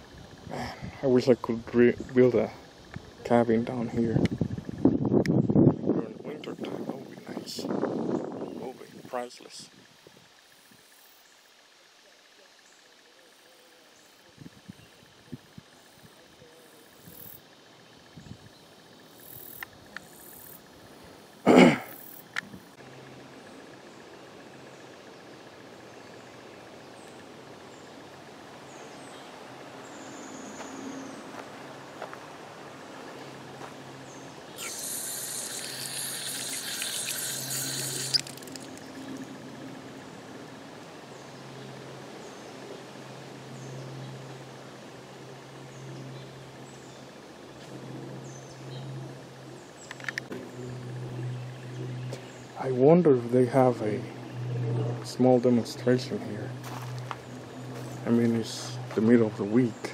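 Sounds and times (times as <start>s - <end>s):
insects: 0.0s - 59.9s
water gushing into metal bucket: 34.6s - 39.2s.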